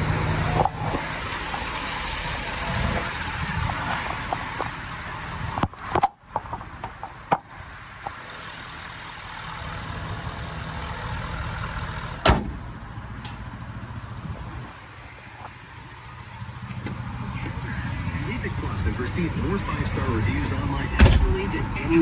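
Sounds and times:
pickup truck engine idling: 0.0 - 22.0.

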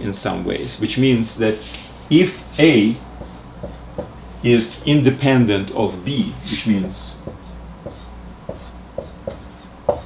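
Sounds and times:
marker writing on whiteboard: 2.5 - 4.2, 6.5 - 10.0.

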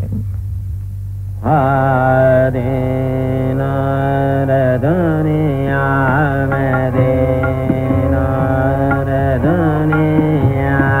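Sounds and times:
steady drone: 0.0 - 11.0
man singing classical vocals: 1.4 - 11.0.

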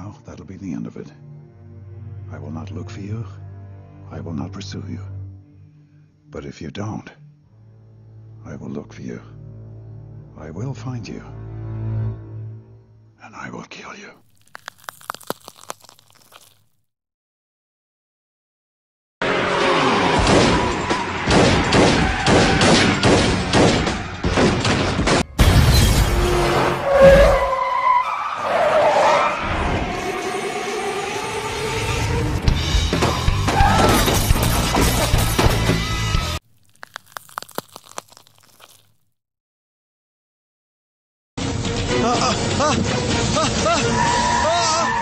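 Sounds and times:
crackling clicks: 14.2 - 16.7, 36.4 - 39.0.

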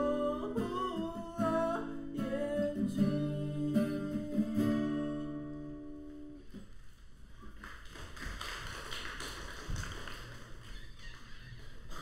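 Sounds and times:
audience applauding: 7.5 - 12.0.

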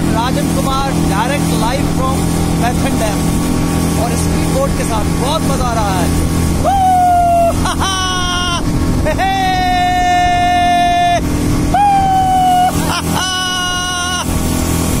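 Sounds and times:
speedboat engine drone: 0.0 - 15.0
man's high-pitched cries: 6.6 - 14.3.

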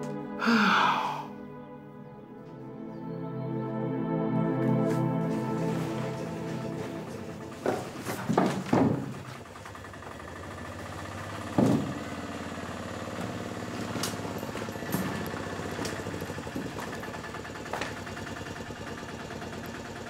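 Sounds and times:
small engine idling: 5.2 - 20.0.

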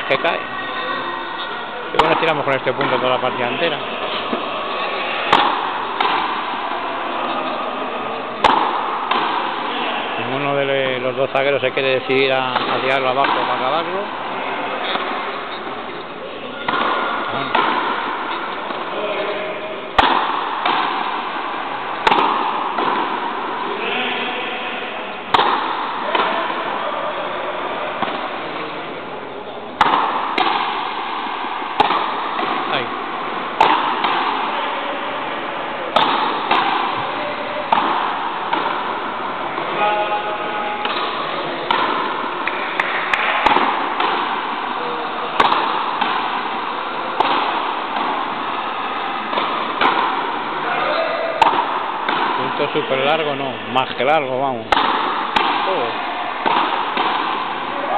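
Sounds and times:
faint voices: 0.0 - 57.9
rubber ball cracking off rackets and wall: 40.8 - 52.5, 54.7 - 57.7.

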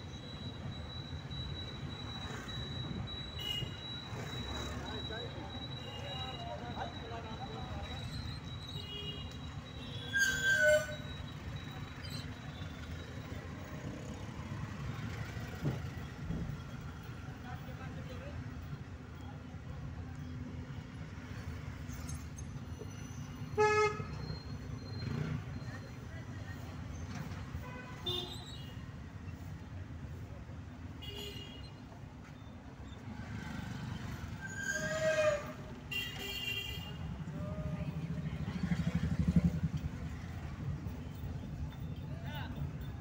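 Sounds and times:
car horn honk: 3.4 - 3.8, 23.6 - 24.2, 35.9 - 37.1.

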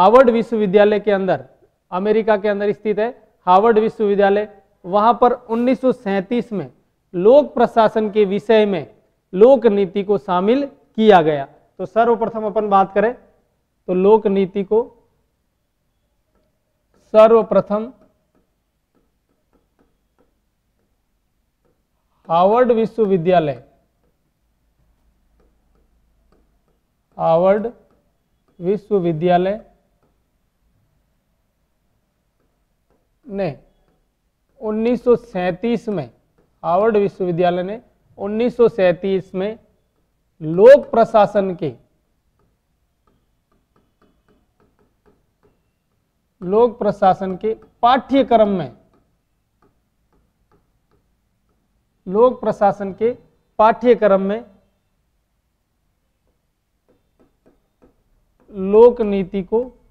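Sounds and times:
pen tapping on screen: 16.3 - 30.3, 32.2 - 37.2, 42.2 - 51.8, 56.2 - 59.8.

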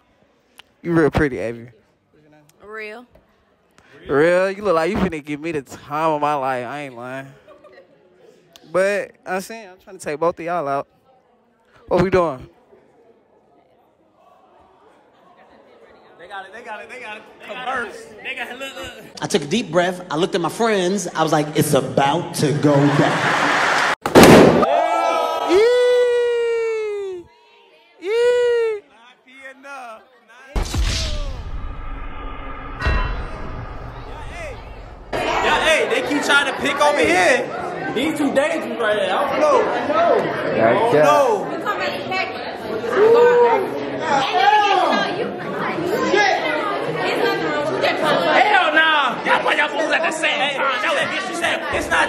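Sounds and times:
loud bang: 24.0 - 24.7, 30.6 - 35.9
long pitched note sliding up: 30.7 - 35.5
people talking over each other: 33.8 - 52.0.

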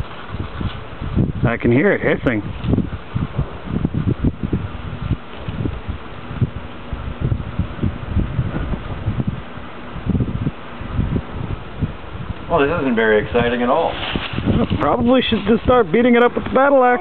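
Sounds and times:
wind buffeting microphone: 0.0 - 17.0
microwave oven humming: 2.8 - 13.8.

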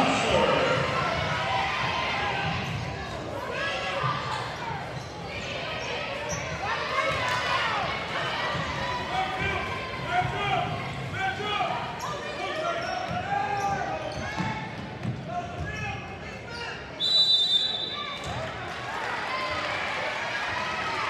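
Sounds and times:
spectators' voices and shouts: 0.0 - 14.8
referee's whistle: 17.0 - 18.2.

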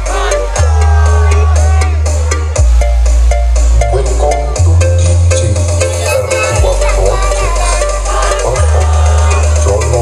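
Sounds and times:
loud dance music with heavy bass: 0.0 - 10.0.

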